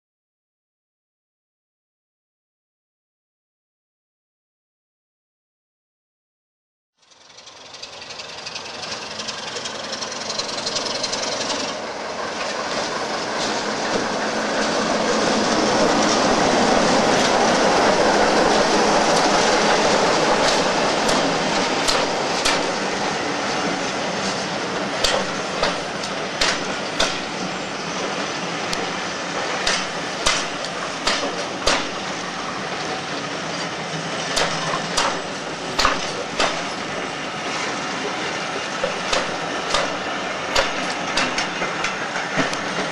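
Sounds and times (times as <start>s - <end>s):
diesel locomotive engine: 7.0s - 42.9s
train wheels clacking over rail joints: 7.1s - 42.9s.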